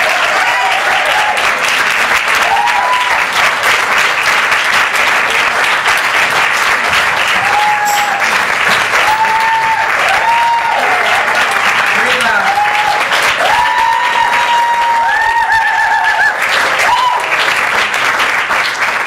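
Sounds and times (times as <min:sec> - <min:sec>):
whooping cheers: 0:00.0 - 0:01.5, 0:02.3 - 0:03.4, 0:07.2 - 0:17.6
audience applauding: 0:00.0 - 0:19.0.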